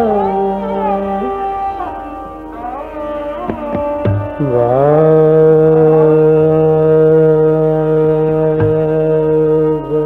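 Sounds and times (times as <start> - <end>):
man singing a long note: 0.0 - 10.0.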